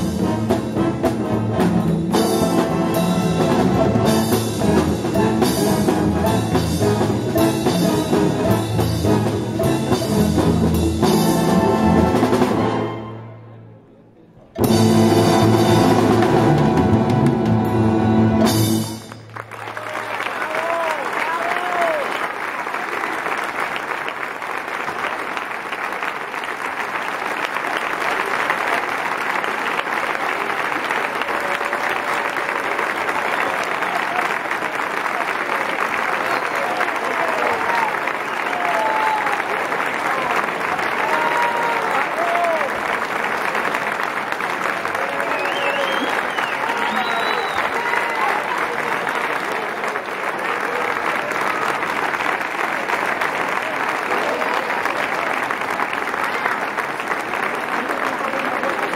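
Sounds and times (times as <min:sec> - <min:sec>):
audience applauding: 0:15.2 - 0:58.9.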